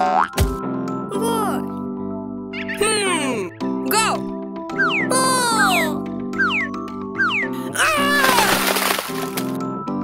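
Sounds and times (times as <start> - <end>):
background music tune: 0.0 - 10.0.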